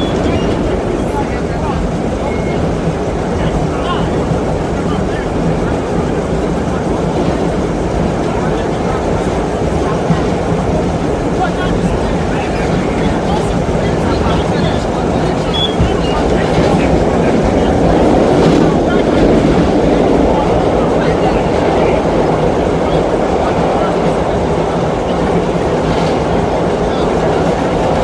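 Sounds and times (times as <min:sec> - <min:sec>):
indistinct passenger chatter: 0:00.0 - 0:28.0
subway train running in tunnel: 0:00.0 - 0:28.0.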